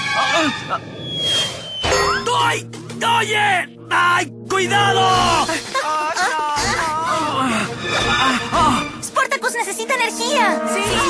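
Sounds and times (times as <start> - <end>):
background music: 0.0 - 11.0
thin falling whistle: 1.0 - 2.2
strained vocal cries: 4.7 - 9.0.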